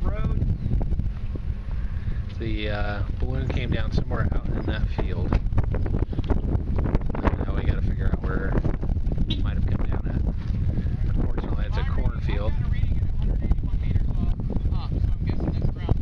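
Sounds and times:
people talking: 0.0 - 0.4, 2.4 - 5.4, 7.2 - 8.6, 9.3 - 10.2, 11.1 - 16.0
wind buffeting microphone: 0.0 - 16.0.

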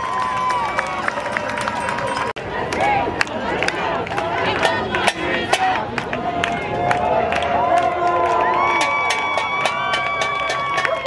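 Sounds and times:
crowd talking and shouting: 0.0 - 11.0.

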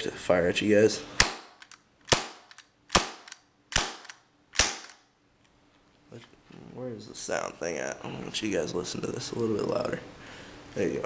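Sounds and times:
airsoft pistol shots: 1.2 - 5.0.

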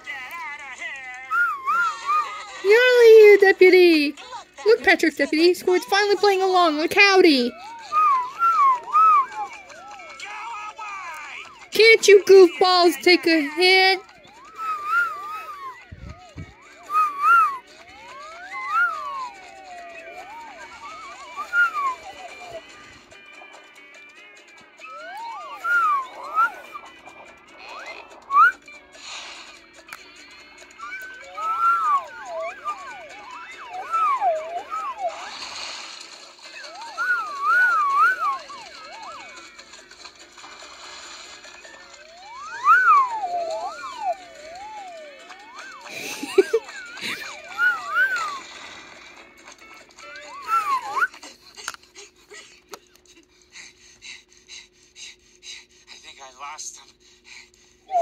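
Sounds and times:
slide whistles gliding: 1.3 - 2.3, 7.6 - 10.1, 14.4 - 16.2, 16.8 - 22.8, 24.8 - 27.0, 27.8 - 28.7, 30.7 - 35.4, 36.6 - 39.3, 42.1 - 48.5, 50.3 - 51.2.

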